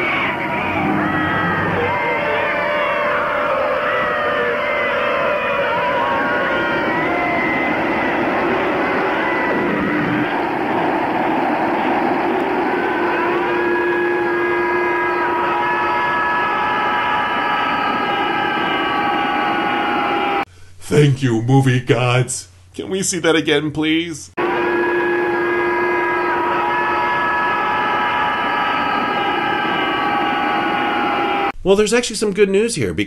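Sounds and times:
wind-like noise: 0.0s - 20.4s
sustained horn-like tones: 0.0s - 20.5s, 24.4s - 31.6s
wailing gliding tones: 0.0s - 20.5s, 24.4s - 31.6s.

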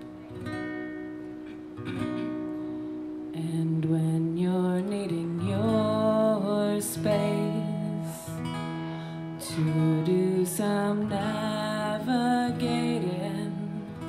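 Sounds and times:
acoustic guitar strumming: 0.0s - 14.0s
woman singing: 3.3s - 8.7s, 9.4s - 14.0s.

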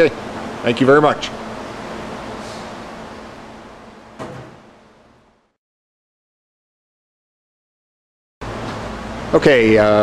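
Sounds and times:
low machine hum: 0.0s - 5.6s, 8.4s - 10.0s.

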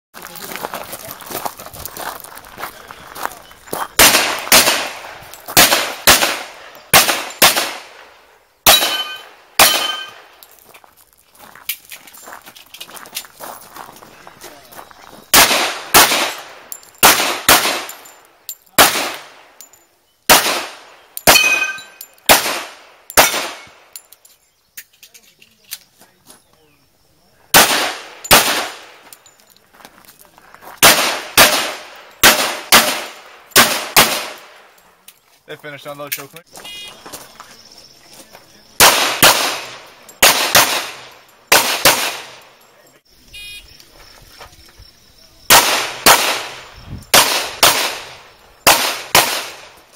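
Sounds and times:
pistol shots: 4.0s - 10.3s, 15.3s - 18.1s, 18.8s - 19.5s, 20.3s - 23.9s, 27.5s - 29.0s, 30.8s - 34.6s, 38.8s - 42.5s, 45.5s - 49.8s
ring of steel targets: 8.7s - 10.3s, 21.2s - 24.2s.

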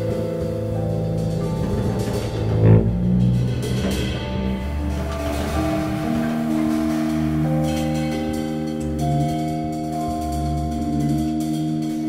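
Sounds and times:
electric piano chords: 0.0s - 12.0s
fretless bass line: 0.0s - 12.0s.

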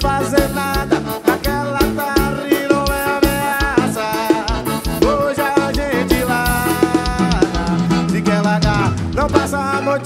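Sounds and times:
accordion melody: 0.0s - 10.0s
steady drum beat: 0.0s - 10.0s.

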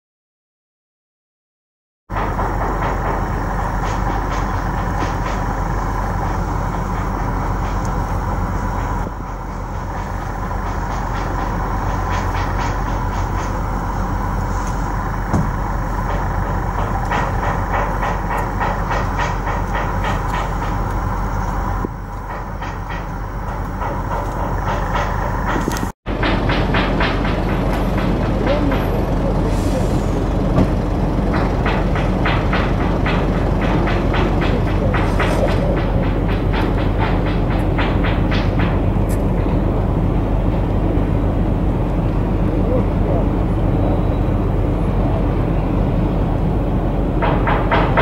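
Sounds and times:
mechanical rumble: 2.1s - 48.0s.

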